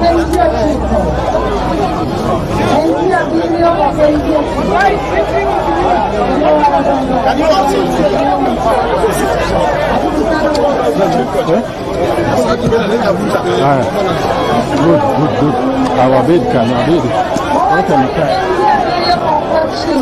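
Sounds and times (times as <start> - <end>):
overlapping conversational chatter: 0.0 - 20.0.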